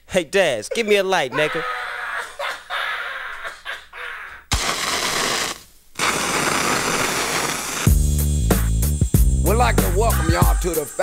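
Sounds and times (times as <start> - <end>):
loud steady hiss: 4.5 - 11.0
hip hop beat: 7.9 - 11.0.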